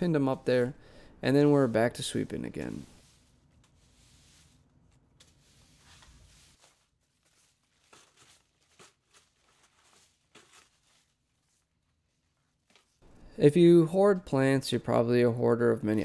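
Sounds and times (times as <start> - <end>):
broom sweeping concrete floor: 1.3 - 11.7.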